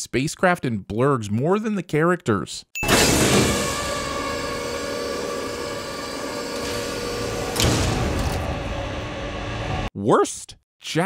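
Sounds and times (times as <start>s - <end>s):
mechanical lift machine hum: 2.8s - 9.9s.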